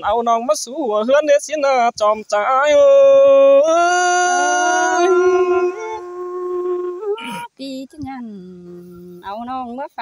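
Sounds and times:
person singing a long note: 3.0 - 7.5
lower held pitch: 3.2 - 7.4.

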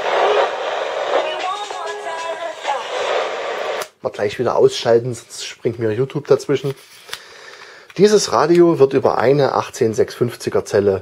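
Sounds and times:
radio broadcast through tiny speaker: 0.0 - 4.0.

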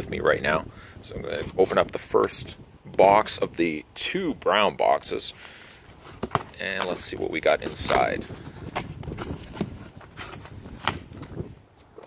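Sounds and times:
cardboard box rustling and scraping: 5.8 - 11.4.

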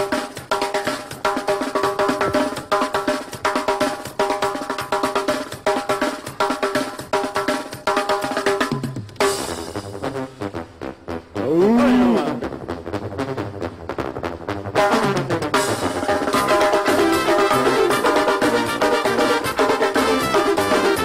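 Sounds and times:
snare and bass drum beat: 0.0 - 10.5, 14.7 - 21.0
keyboard chords: 10.0 - 13.4, 14.8 - 21.0
live band instrumental: 11.5 - 12.6, 14.8 - 21.0.

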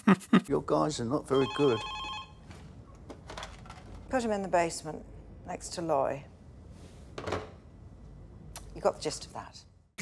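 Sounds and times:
telephone ringing: 1.3 - 2.5.

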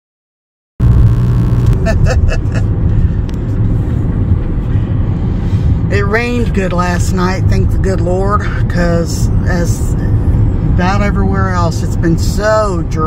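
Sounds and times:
car road and engine rumble: 0.8 - 13.0.

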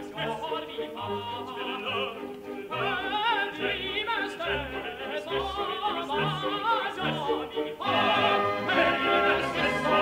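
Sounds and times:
operatic male voices singing: 0.0 - 10.0
orchestra playing: 0.0 - 10.0.

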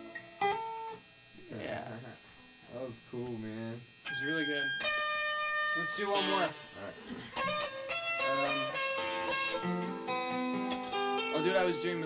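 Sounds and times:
guitar picking single notes: 0.0 - 1.0, 4.0 - 12.0.

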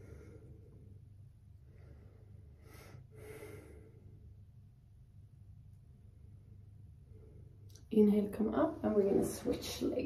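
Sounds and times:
woman breathing: 0.0 - 4.4.

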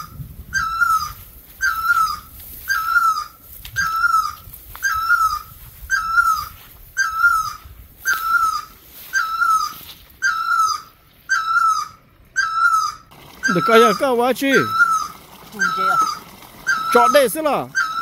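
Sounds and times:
buzzy animal call: 0.0 - 18.0.

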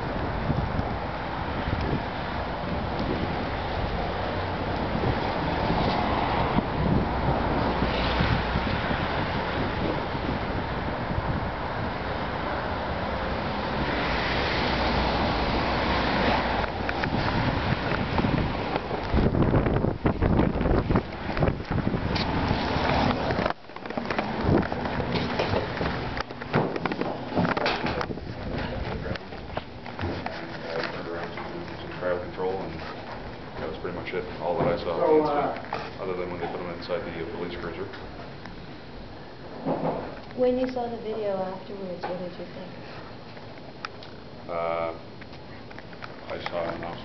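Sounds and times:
wind buffeting microphone: 0.0 - 12.8, 15.1 - 29.8.

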